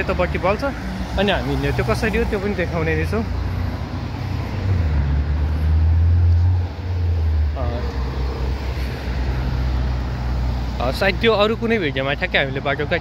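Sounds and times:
cars passing close by: 0:00.0 - 0:13.0.

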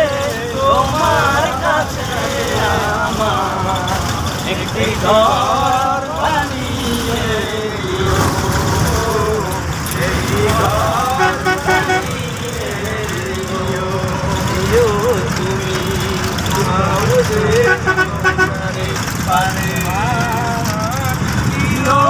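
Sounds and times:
bus engine rumble: 0:00.0 - 0:22.0
voices: 0:00.0 - 0:22.0.

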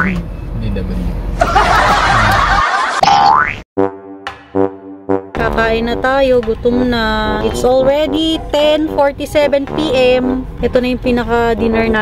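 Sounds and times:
cartoon boing sound effects: 0:03.0 - 0:04.8.

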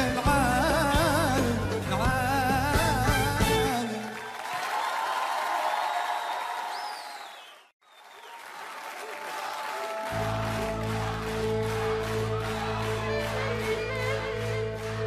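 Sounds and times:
band instrumental intro: 0:00.0 - 0:04.1, 0:09.8 - 0:15.0
audience applauding and cheering: 0:02.7 - 0:15.0.

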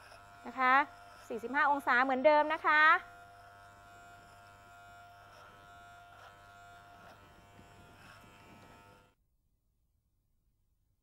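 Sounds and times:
electric hair clipper buzzing: 0:00.0 - 0:09.2.

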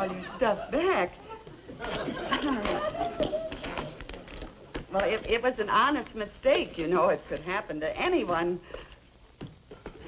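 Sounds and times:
studio audience laughter: 0:00.0 - 0:03.6.

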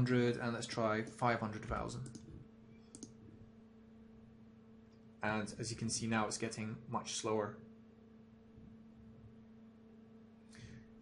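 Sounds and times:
low steady hum: 0:00.0 - 0:11.0
faint computer mouse clicks: 0:02.0 - 0:02.3, 0:02.9 - 0:03.2.

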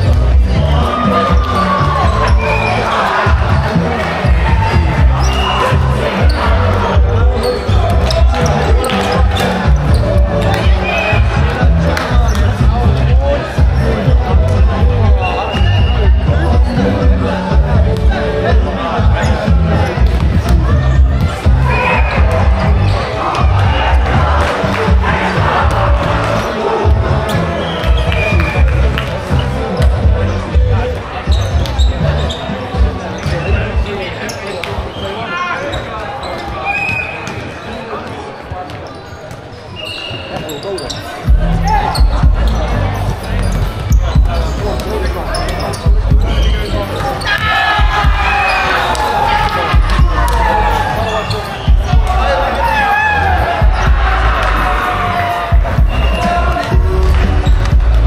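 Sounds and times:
players and spectators voices: 0:00.0 - 0:58.0
volleyballs struck and bouncing: 0:19.8 - 0:22.7.

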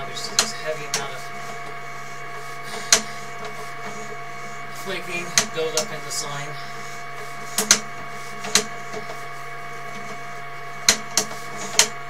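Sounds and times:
electrical hum and whine: 0:00.0 - 0:12.0
sharp click: 0:10.9 - 0:12.0.

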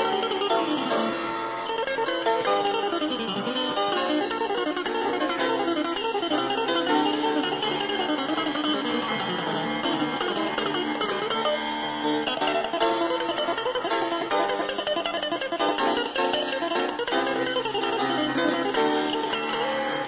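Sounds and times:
jazz guitar: 0:00.0 - 0:20.0
piano: 0:00.0 - 0:20.0.

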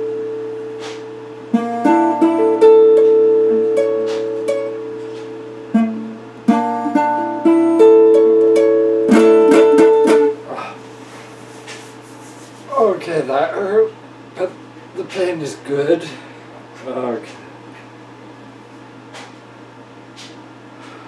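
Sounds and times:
electric guitar played slowly: 0:00.0 - 0:10.7.

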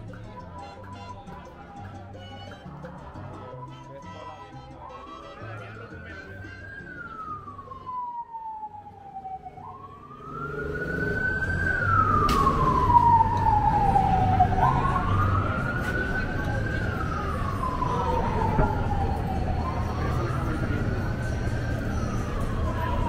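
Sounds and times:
street noise: 0:00.0 - 0:23.0
siren wailing: 0:03.2 - 0:23.0.

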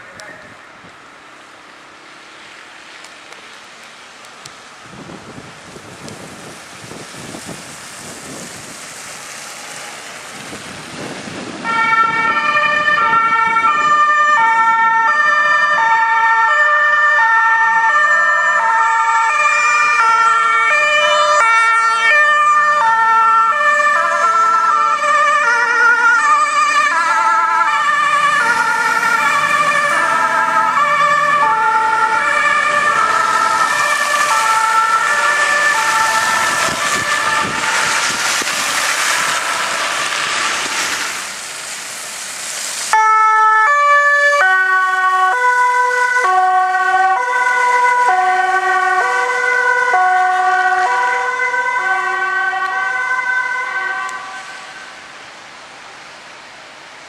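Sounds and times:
two-tone emergency sirens: 0:04.9 - 0:42.0, 0:42.9 - 0:55.3
loud rushing noise: 0:27.9 - 0:43.0.

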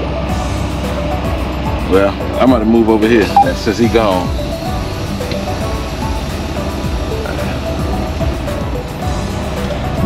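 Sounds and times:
background music: 0:00.0 - 0:10.0
truck diesel engine rumbling: 0:03.6 - 0:10.0.

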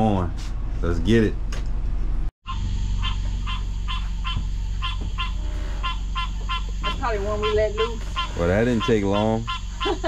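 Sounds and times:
steady low hum: 0:00.0 - 0:10.0
frogs calling: 0:02.4 - 0:10.0.

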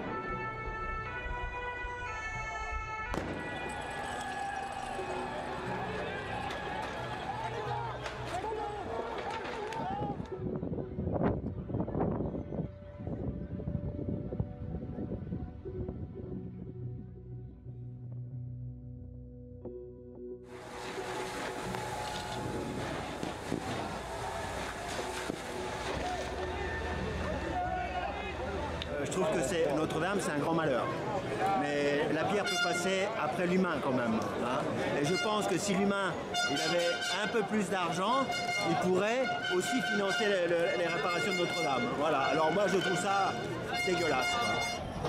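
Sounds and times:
noisy crowd: 0:00.0 - 0:15.1, 0:20.5 - 0:45.0
people shouting: 0:03.1 - 0:10.2, 0:21.0 - 0:28.7
faint voices: 0:03.2 - 0:13.3, 0:20.6 - 0:45.0
water spray rushing: 0:20.5 - 0:27.3.

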